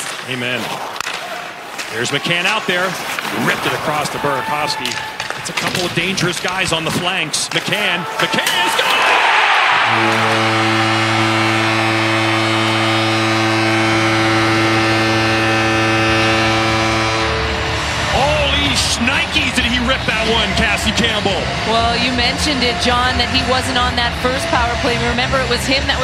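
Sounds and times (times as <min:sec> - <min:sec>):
crowd cheering: 0:01.0 - 0:26.0
arena music: 0:08.3 - 0:26.0
deep goal horn blast: 0:08.4 - 0:26.0.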